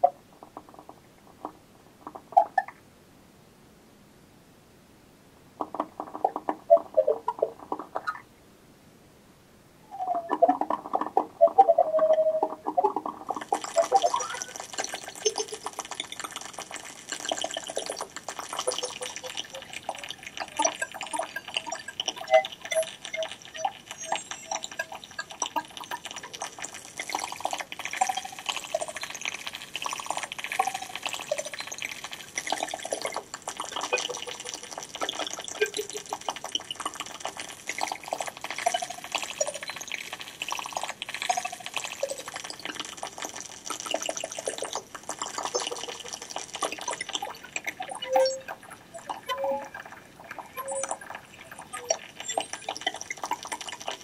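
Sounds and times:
bubbling trickling water sounds: 5.6 - 8.2, 9.9 - 54.0
short pitched blips: 13.8 - 14.6.

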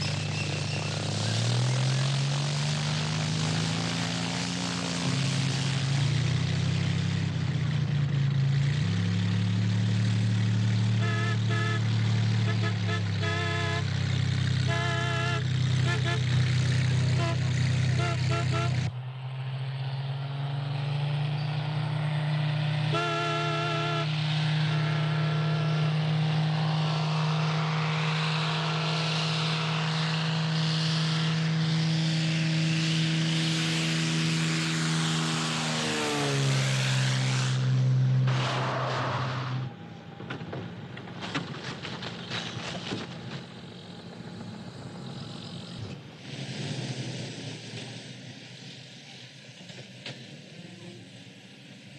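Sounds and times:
propeller plane engine droning: 0.0 - 51.9.

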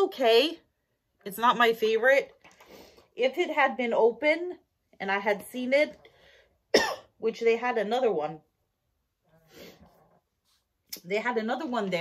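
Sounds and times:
woman speaking: 0.0 - 0.6, 1.2 - 2.3, 3.2 - 6.0, 7.2 - 8.5, 10.9 - 12.0.

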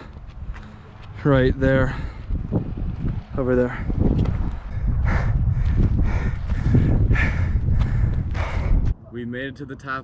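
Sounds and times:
wind rumbling on microphone: 0.0 - 9.0.

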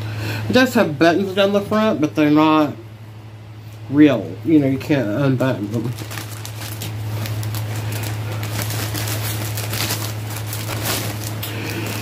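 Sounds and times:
low electrical hum: 0.0 - 12.0
plastic packaging crinkling: 5.4 - 12.0.

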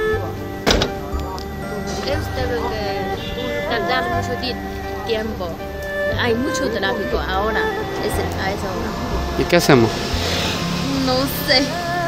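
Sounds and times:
background music: 0.0 - 12.0
car door shutting: 0.6 - 2.2.

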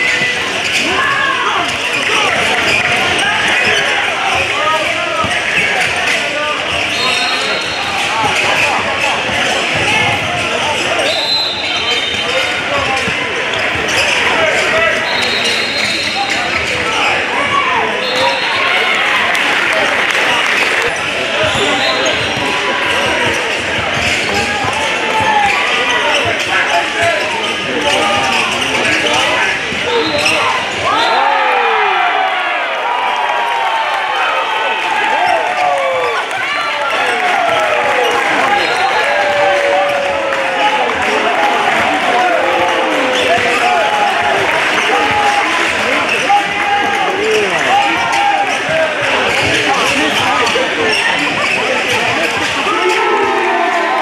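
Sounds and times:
sneakers squeaking: 0.0 - 31.3, 35.0 - 53.1
people calling out and talking: 0.0 - 54.0.

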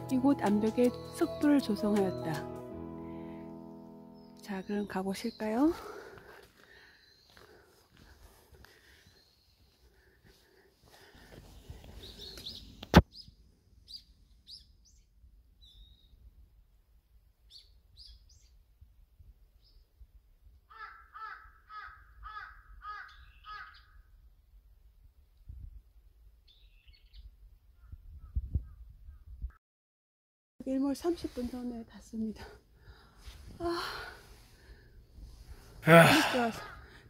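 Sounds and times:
high bird chirps: 13.9 - 16.2, 23.0 - 24.0
larger bird calling: 20.7 - 24.0.

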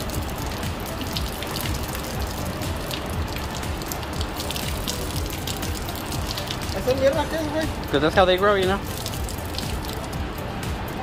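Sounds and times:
water splashing into puddle: 0.0 - 8.0, 8.6 - 10.2.

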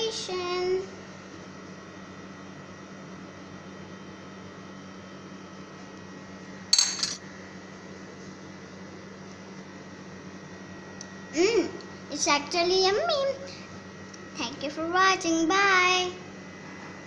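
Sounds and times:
metal spoon clinking on dish: 6.8 - 7.2.

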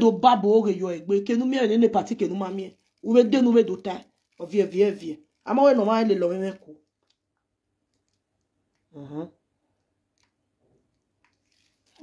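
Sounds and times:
person speaking: 0.0 - 7.0, 8.9 - 9.4.

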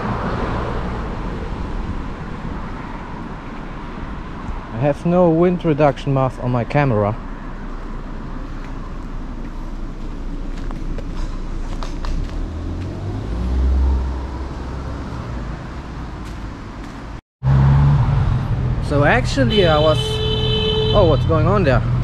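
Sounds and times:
car passing: 0.0 - 4.9, 7.1 - 22.0
road traffic: 0.0 - 22.0.

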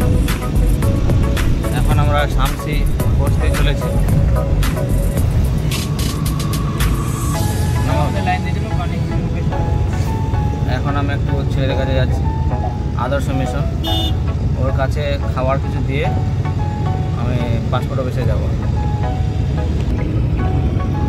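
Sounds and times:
music with singing voice: 0.0 - 10.7
car engine and tyres rumbling: 0.0 - 21.0.

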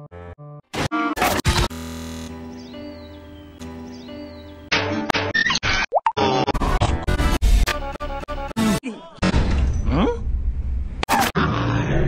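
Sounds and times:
low rumble: 9.8 - 11.0.

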